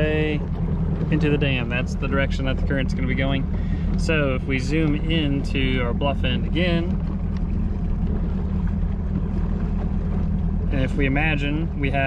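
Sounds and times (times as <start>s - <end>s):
boat motor running: 0.0s - 12.0s.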